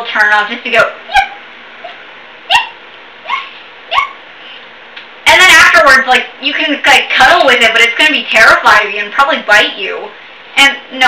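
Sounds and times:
person yipping: 0:01.1 - 0:04.2.

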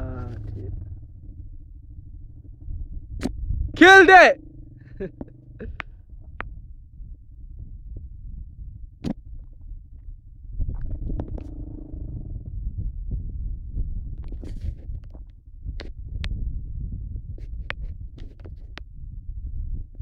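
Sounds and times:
quad bike engine: 0:00.0 - 0:03.7, 0:04.4 - 0:06.1, 0:11.4 - 0:12.3
wind buffeting microphone: 0:06.5 - 0:20.0.

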